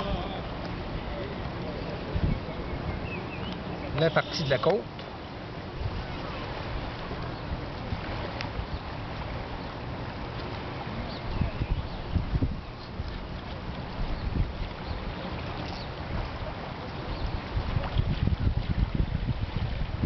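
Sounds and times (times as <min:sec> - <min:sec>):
wind buffeting microphone: 0:00.0 - 0:04.0, 0:05.2 - 0:20.0.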